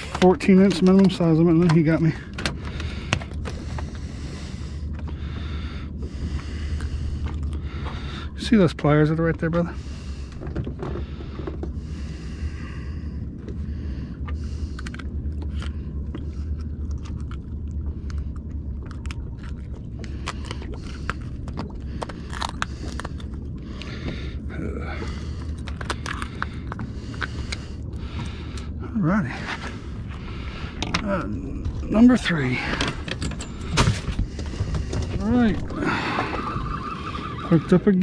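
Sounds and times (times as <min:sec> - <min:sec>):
fish clicking and scraping on deck: 0:00.0 - 0:08.2, 0:18.1 - 0:24.4, 0:25.0 - 0:28.7, 0:32.6 - 0:36.6
low rumble: 0:00.0 - 0:38.0.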